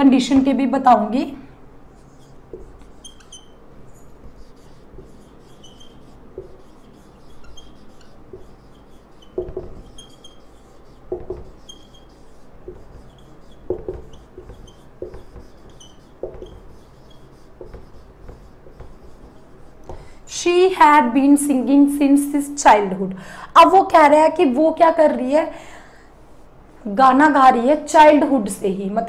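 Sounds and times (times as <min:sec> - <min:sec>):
marker squeaking on whiteboard: 0:01.9 - 0:20.2.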